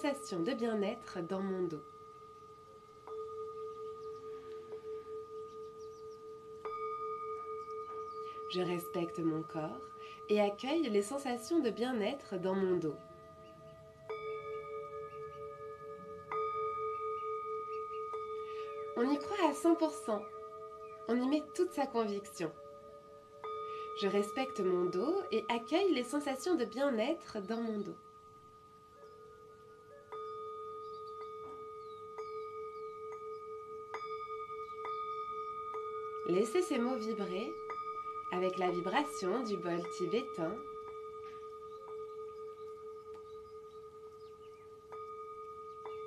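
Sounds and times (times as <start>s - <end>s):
singing bowl struck ringing: 0.0s - 46.0s.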